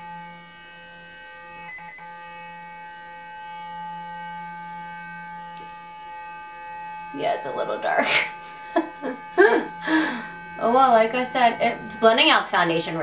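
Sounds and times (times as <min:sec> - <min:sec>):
electric face brush humming: 0:00.0 - 0:13.0.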